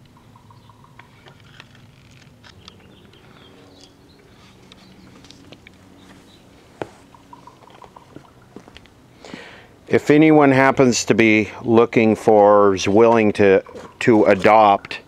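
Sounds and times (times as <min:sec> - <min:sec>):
low steady hum: 0:00.0 - 0:15.0.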